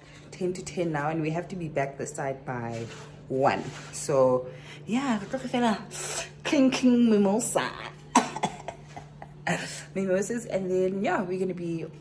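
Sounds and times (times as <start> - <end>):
woman coughing: 8.0 - 9.9.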